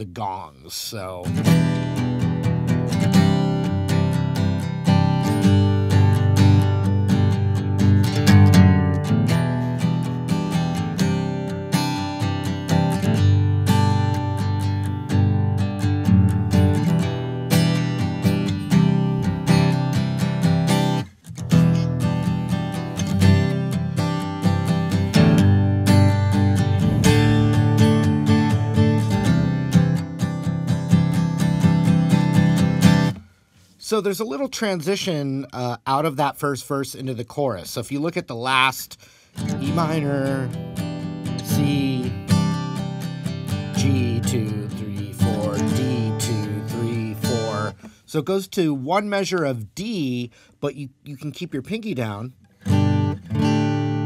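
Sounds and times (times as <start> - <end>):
acoustic guitar strumming chords: 0.2 - 33.8, 38.4 - 49.3, 52.0 - 54.0.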